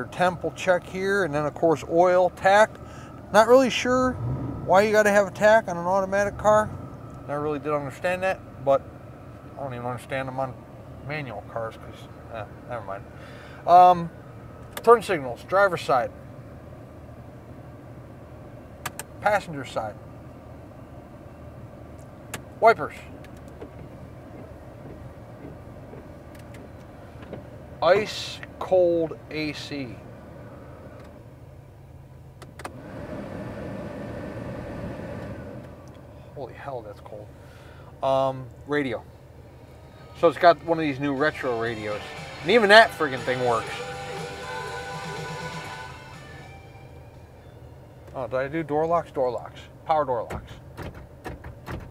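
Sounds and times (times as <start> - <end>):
engine idling and blower hum: 0.0 - 51.9
fan lever clicks: 18.8 - 19.1
turn signal lever clicks: 18.8 - 19.1, 23.2 - 27.4
air rushing from vents: 32.5 - 36.4
music from car speakers: 41.5 - 47.6.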